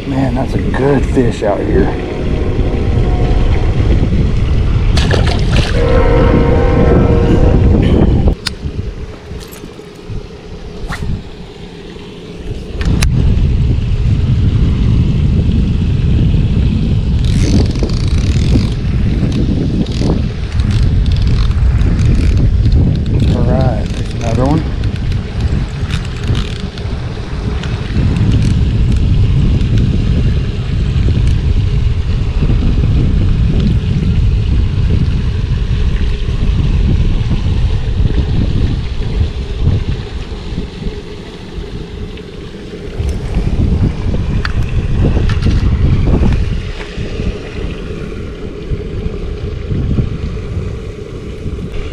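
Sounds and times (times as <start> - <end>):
wind buffeting microphone: 0.0 - 51.9.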